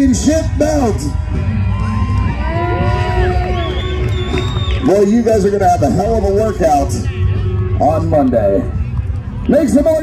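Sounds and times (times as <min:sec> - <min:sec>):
crowd cheering: 0:00.0 - 0:10.0
loud music with heavy bass: 0:00.0 - 0:10.0.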